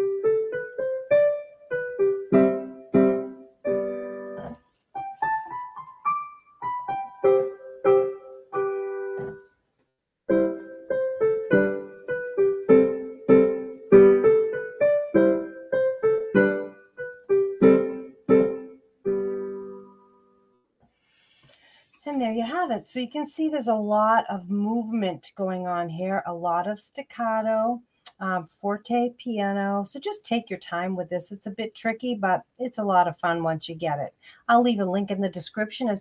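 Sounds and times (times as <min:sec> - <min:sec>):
digital piano dance piece: 0:00.0 - 0:09.4, 0:10.3 - 0:20.0.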